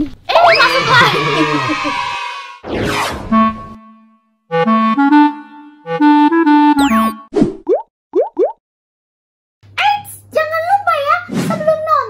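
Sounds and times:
child's voice: 0:00.0 - 0:01.9, 0:09.8 - 0:12.0
swooping sound effect: 0:02.6 - 0:04.2
cheerful musical jingle: 0:03.3 - 0:07.3
rising cartoon pops: 0:06.9 - 0:08.6.

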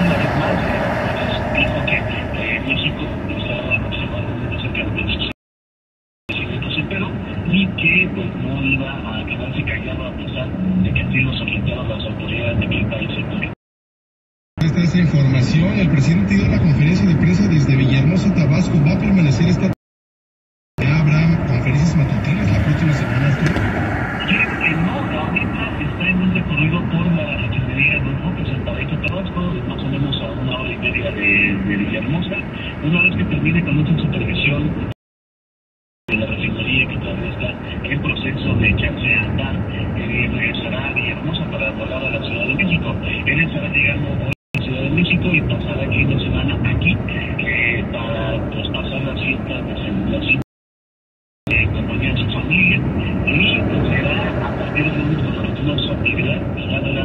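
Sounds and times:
car road and tyre noise: 0:00.0 - 0:05.3, 0:20.8 - 0:34.9, 0:51.5 - 0:57.0
man talking on radio: 0:00.0 - 0:05.3, 0:06.3 - 0:13.6, 0:14.6 - 0:19.8, 0:20.8 - 0:34.9, 0:36.1 - 0:50.4, 0:51.5 - 0:57.0
faint talk radio voices: 0:51.5 - 0:57.0.

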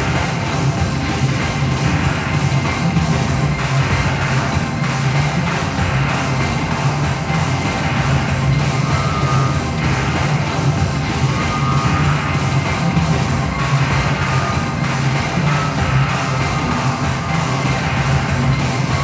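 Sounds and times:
experimental electronic music: 0:00.0 - 0:19.0
sustained low bass: 0:00.0 - 0:19.0.

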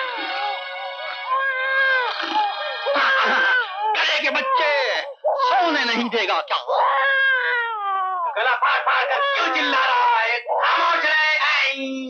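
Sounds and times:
newborn baby crying: 0:00.0 - 0:11.1.

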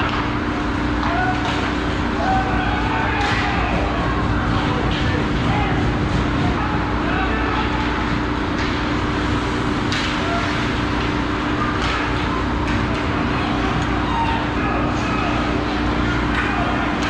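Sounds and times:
faint shouting voices: 0:00.7 - 0:08.6, 0:09.9 - 0:17.0.

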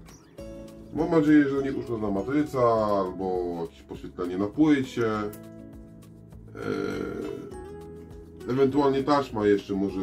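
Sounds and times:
background music: 0:00.0 - 0:10.0
man's low vocal sound: 0:06.5 - 0:07.6.

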